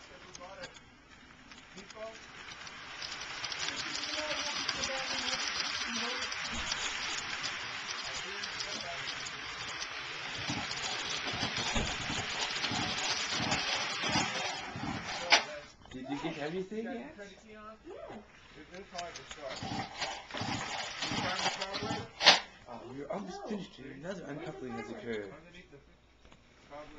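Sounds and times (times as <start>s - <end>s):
model train wheels rattling on rail: 0.0s - 15.8s, 18.3s - 22.5s.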